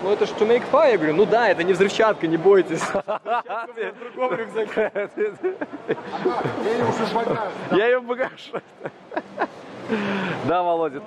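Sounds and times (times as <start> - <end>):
men talking: 0.0 - 11.0
laughter: 2.8 - 9.6.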